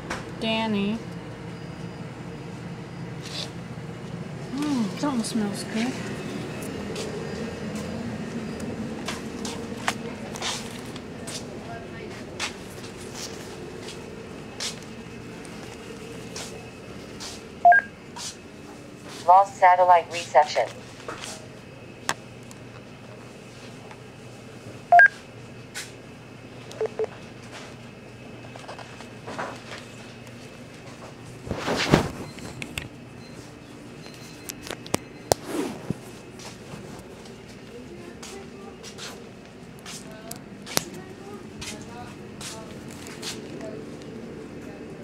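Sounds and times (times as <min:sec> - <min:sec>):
low machine hum: 0:00.0 - 0:45.0
short low beeps: 0:17.6 - 0:17.9, 0:24.9 - 0:25.1, 0:26.8 - 0:27.1.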